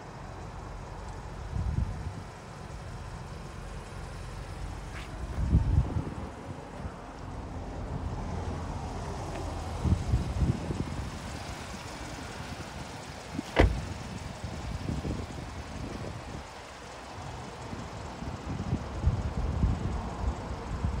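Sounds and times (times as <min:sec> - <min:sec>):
car door slamming: 0:13.4 - 0:14.0.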